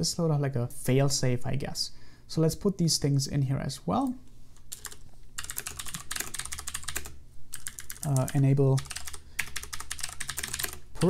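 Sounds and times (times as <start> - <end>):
fast typing on keyboard: 4.7 - 11.0.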